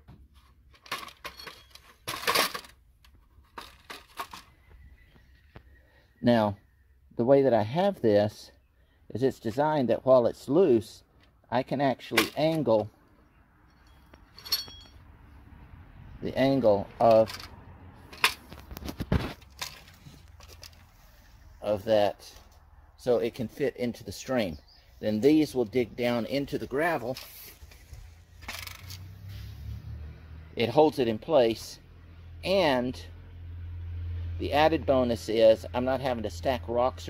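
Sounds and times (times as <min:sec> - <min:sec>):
light metallic clicks and rattles: 0:00.3 - 0:04.6, 0:13.7 - 0:15.0, 0:17.0 - 0:20.9, 0:27.0 - 0:29.1
metal parts knocking and clattering: 0:00.7 - 0:04.5, 0:13.8 - 0:15.0, 0:17.0 - 0:17.5, 0:18.1 - 0:20.8, 0:28.4 - 0:29.0.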